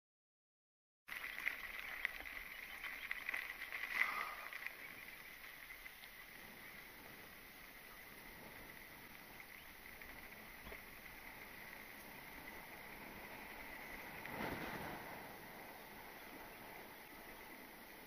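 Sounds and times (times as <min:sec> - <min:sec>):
bike rattling and clicks: 0:01.1 - 0:18.0
bike tyres crunching on gravel: 0:01.1 - 0:18.0.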